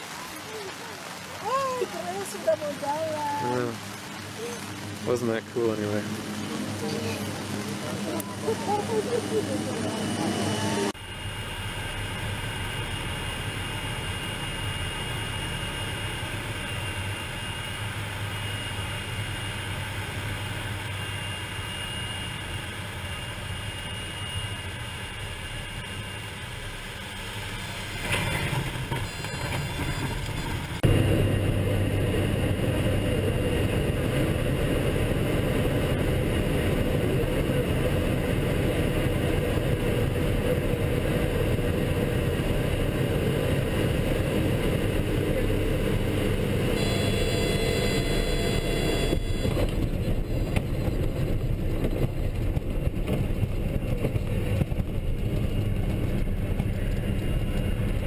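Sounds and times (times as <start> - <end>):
rough rumbling on airstrip: 0.0 - 14.4
propeller plane engine running: 0.0 - 58.0.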